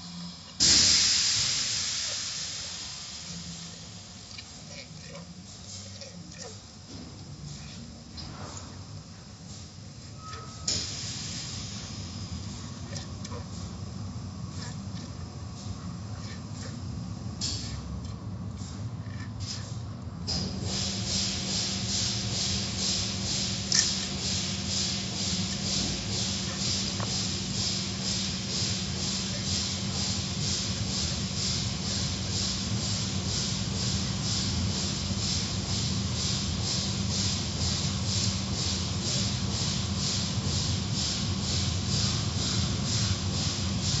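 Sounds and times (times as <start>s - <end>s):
machine hum: 0.0s - 44.0s.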